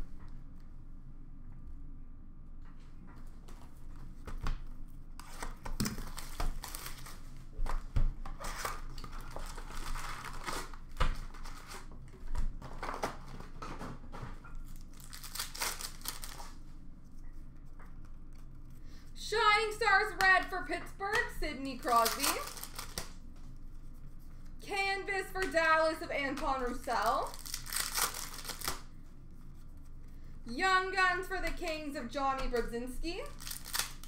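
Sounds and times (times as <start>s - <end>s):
card packs tearing and crinkling: 5.2s - 7.3s, 8.4s - 11.9s, 14.7s - 16.6s, 21.8s - 23.2s, 26.6s - 28.9s, 33.3s - 34.0s.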